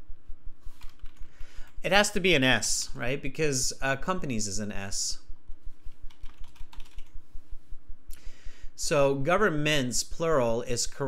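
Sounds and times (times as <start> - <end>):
computer keyboard typing: 0.8 - 1.3, 6.1 - 7.2.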